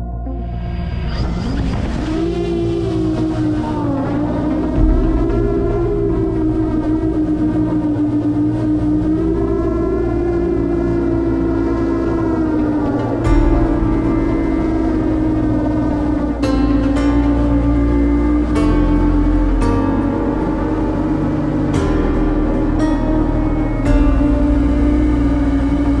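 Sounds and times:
background music: 0.0 - 26.0
drone propellers whining: 0.0 - 26.0.

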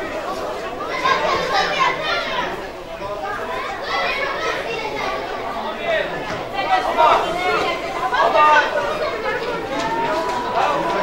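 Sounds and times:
overlapping voices calling out: 6.1 - 11.0.

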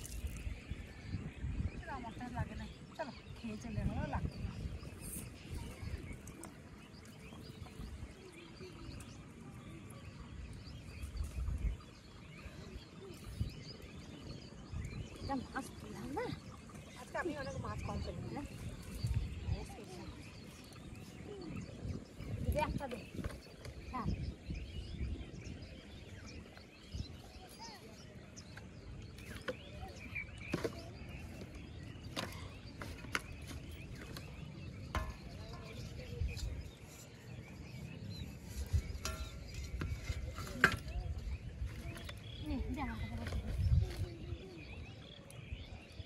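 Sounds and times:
faint bird chirps: 0.0 - 46.0
wind on microphone rumble: 0.0 - 46.0
woman's voice: 42.4 - 43.6.

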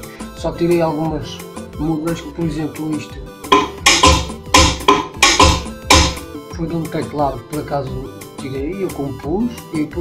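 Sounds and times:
snare-like cracks: 3.5 - 6.2
low kick drum thumps: 3.5 - 6.3
soft pitched backing: 3.5 - 6.3.

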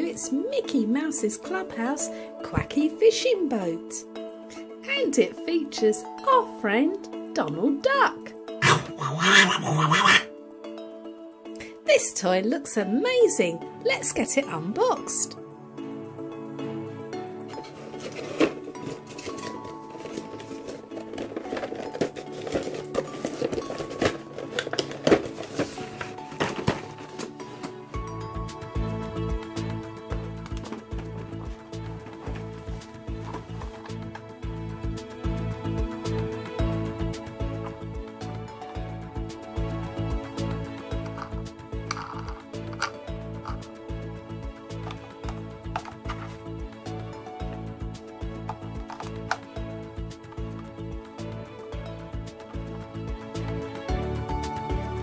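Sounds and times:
background music: 0.0 - 55.0
cardboard box being handled: 17.6 - 27.7
plastic packaging rustling: 17.6 - 27.8.

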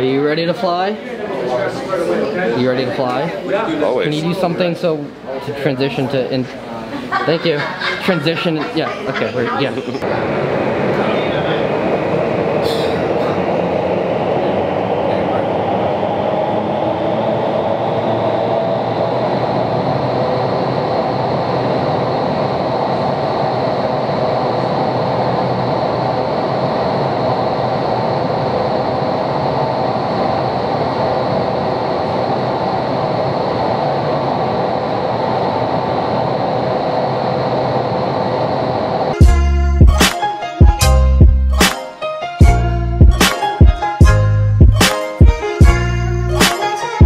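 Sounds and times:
loud rush of air from fans: 0.0 - 39.2
high whine rising in pitch: 10.0 - 47.0.

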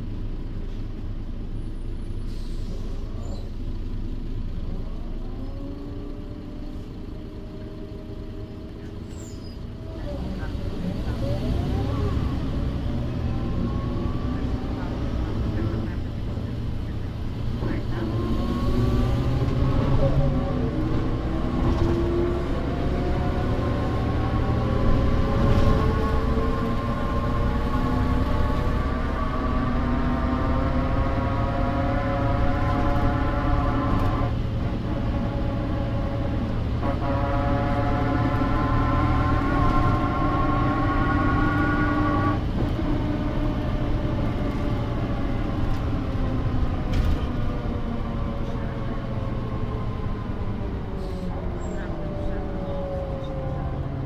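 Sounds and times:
bus diesel engine: 0.0 - 54.0.

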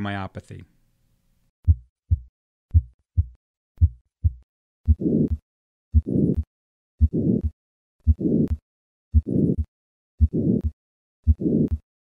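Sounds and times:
heartbeat through stethoscope: 1.6 - 11.8.

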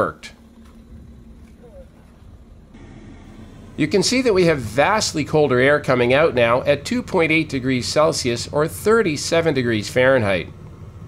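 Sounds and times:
air conditioning running: 0.0 - 11.0
car engine idling: 0.0 - 11.0.

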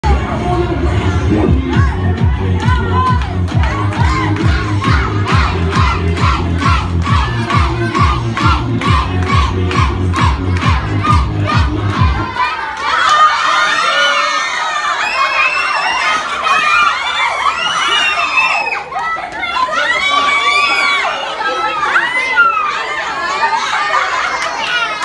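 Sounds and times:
music with steady beat: 1.2 - 12.3
children shouting and screaming: 1.7 - 25.0.

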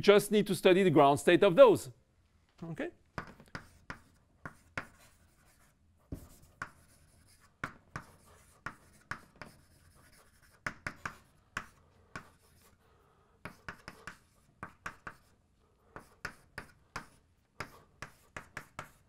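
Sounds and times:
chalk tapping and scraping on board: 3.2 - 12.8, 13.4 - 19.0.

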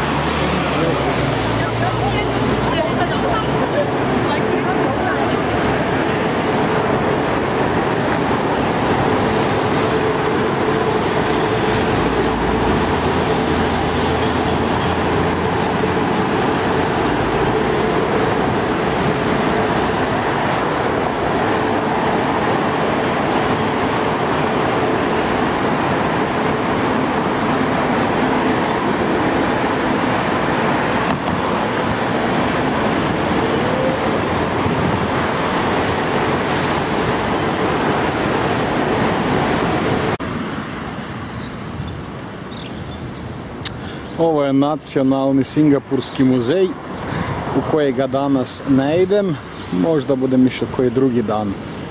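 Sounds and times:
road traffic passing: 0.0 - 51.9.

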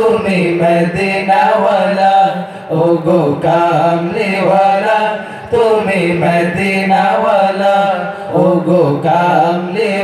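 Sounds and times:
men singing devotional song: 0.0 - 10.0.

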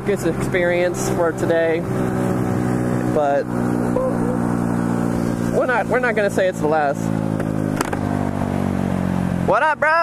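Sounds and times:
scooter engine running: 0.0 - 9.7.

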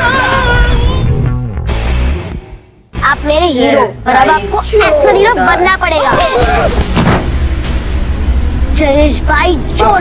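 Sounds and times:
loud sharp booms: 6.1 - 8.5
low rumble: 6.7 - 9.8.

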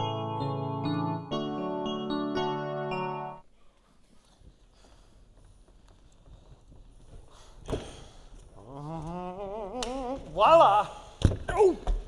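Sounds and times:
man's sing-song voice: 8.6 - 10.9.

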